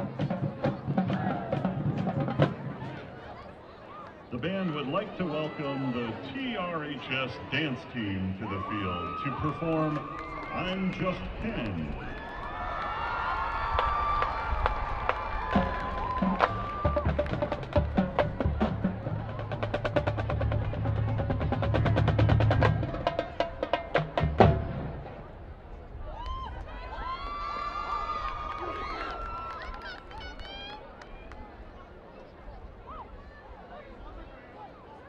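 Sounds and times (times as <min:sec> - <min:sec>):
marching band sustained notes: 0:00.0 - 0:03.6, 0:15.5 - 0:25.6.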